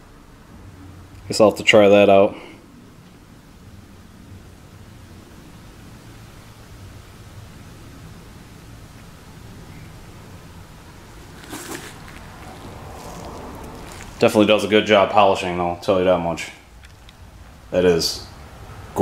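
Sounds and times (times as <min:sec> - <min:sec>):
low background hum and hiss: 0:00.0 - 0:19.0
plastic bottle rustling: 0:11.2 - 0:14.3.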